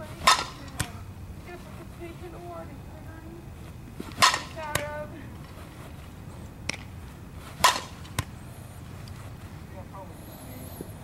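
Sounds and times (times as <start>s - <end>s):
bat cracking ball: 0.0s - 1.0s, 4.0s - 4.9s, 6.6s - 8.4s.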